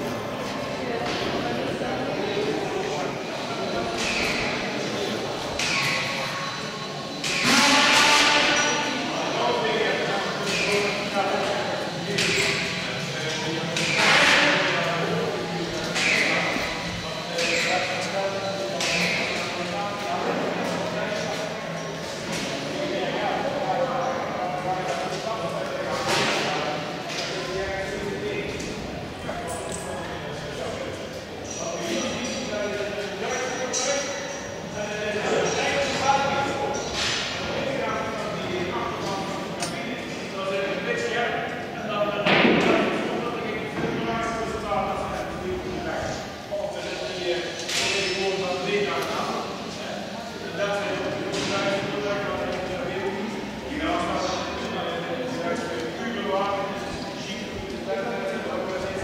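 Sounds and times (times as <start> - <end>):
indistinct voices in a hall: 0.0 - 59.0.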